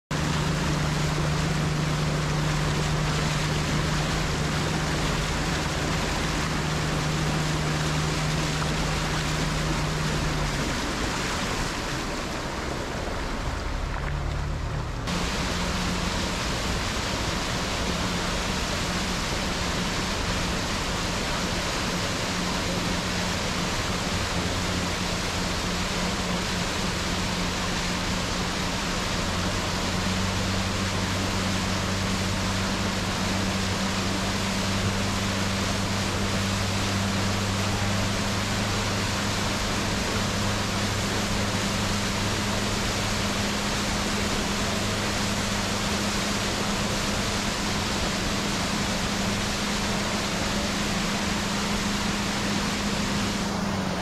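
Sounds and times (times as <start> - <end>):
boat engine hum: 0.0 - 54.0
wind and water rushing: 0.1 - 54.0.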